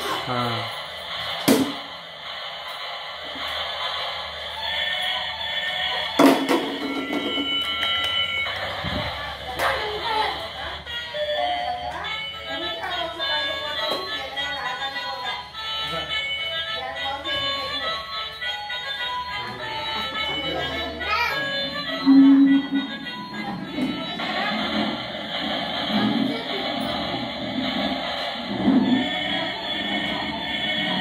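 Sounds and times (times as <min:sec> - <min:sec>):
toy beeping electronic tune: 0:10.9 - 0:25.3.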